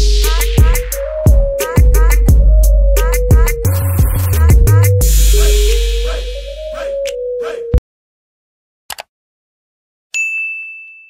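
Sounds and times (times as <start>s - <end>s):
bell-like ding: 10.1s - 11.0s.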